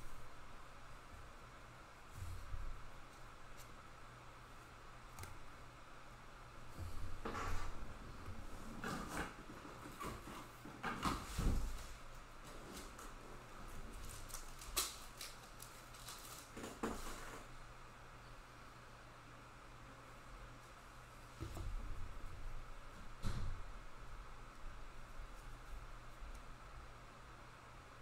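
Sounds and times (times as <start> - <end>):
cards and plastic holders rustling: 13.8 - 17.5.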